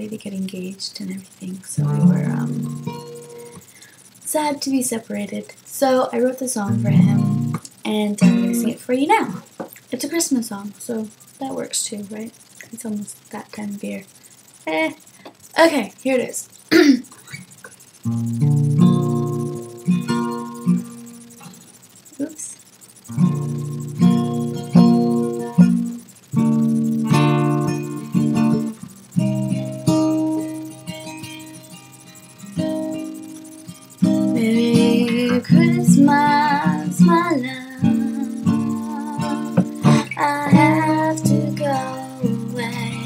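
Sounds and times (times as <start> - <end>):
acoustic guitar chords: 0.0 - 15.6, 16.7 - 43.0
person singing: 34.3 - 43.0.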